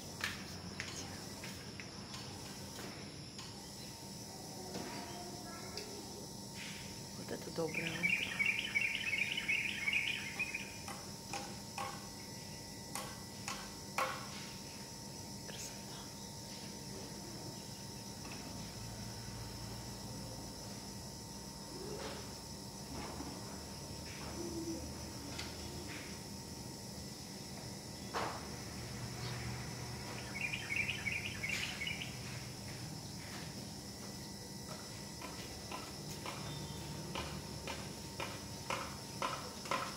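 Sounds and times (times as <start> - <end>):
rapid chirping: 7.6 - 11.9, 29.2 - 32.5.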